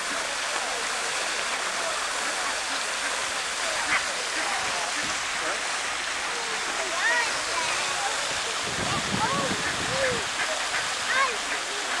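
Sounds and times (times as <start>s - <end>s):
fountain splashing into pond: 0.0s - 12.0s.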